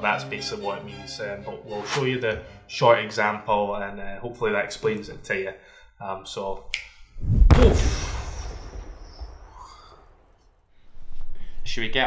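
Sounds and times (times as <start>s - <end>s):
noisy whoosh: 7.2s - 9.6s.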